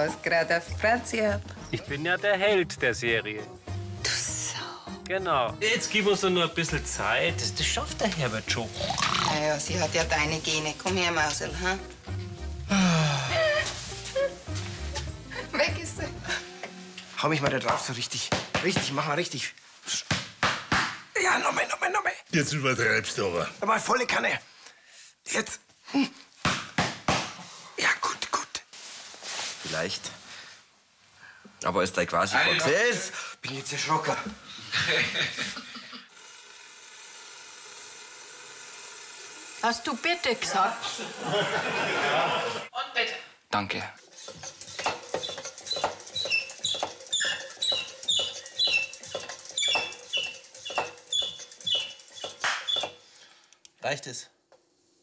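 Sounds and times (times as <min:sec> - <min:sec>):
hand slaps on shoulder: 0:20.0 - 0:21.0, 0:26.4 - 0:27.4
short high-pitched squeaks: 0:44.2 - 0:53.0.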